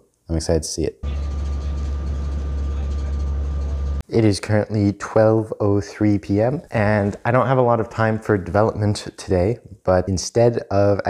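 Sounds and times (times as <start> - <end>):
car road noise rumble: 1.0 - 4.0
faint steady whine: 1.0 - 4.0.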